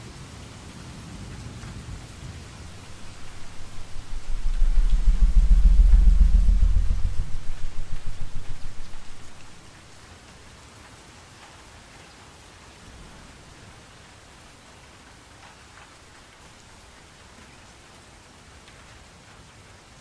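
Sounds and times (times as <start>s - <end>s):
steady rain: 0.0s - 20.0s
low roll of thunder: 1.6s - 9.8s.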